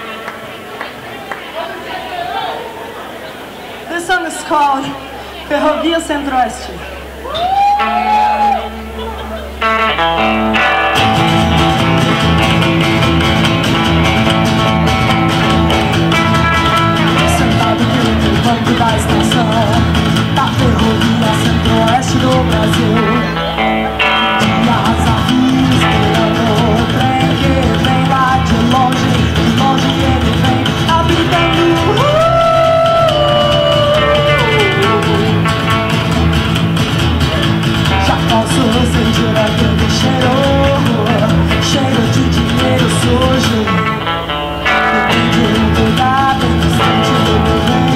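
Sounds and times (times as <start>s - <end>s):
electric guitar: 0.0s - 2.0s, 4.8s - 47.9s
upright bass: 4.3s - 47.9s
strummed acoustic guitar: 8.7s - 47.9s
woman singing: 17.1s - 23.3s, 24.4s - 35.4s, 45.0s - 47.9s.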